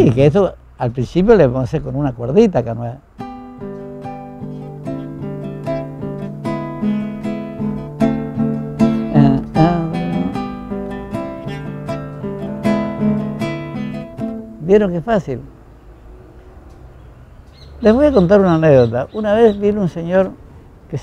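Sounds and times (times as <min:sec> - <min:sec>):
classical guitar plucked notes: 0:03.2 - 0:15.1.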